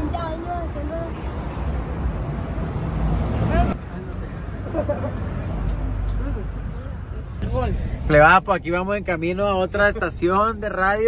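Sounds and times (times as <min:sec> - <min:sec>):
street traffic rumbling: 0:00.0 - 0:11.0.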